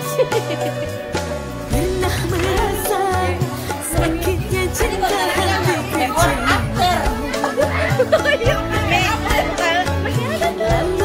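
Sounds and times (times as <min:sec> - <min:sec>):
crowd talking: 0:00.0 - 0:11.0
music with singing voice: 0:00.0 - 0:11.0
steady bass beat: 0:01.6 - 0:11.0.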